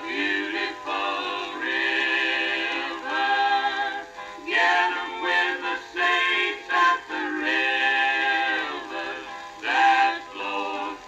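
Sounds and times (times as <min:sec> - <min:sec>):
mixed voices singing a hymn: 0:00.0 - 0:11.0.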